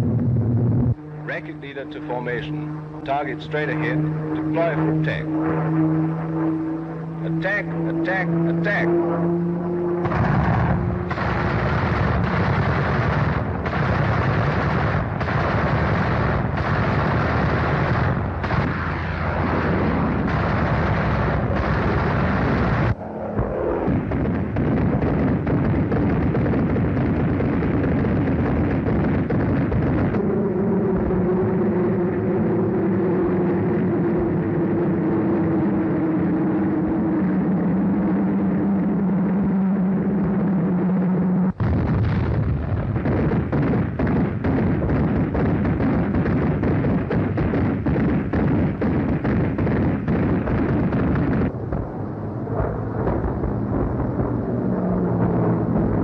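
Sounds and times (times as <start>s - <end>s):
aircraft engines: 0.0s - 56.0s
gunfire: 10.0s - 30.2s, 41.6s - 51.9s
explosions: 10.0s - 39.3s, 40.0s - 56.0s.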